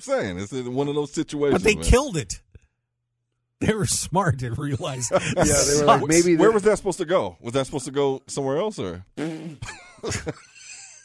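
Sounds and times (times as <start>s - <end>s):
man laughing: 4.4s - 6.6s, 9.6s - 11.0s.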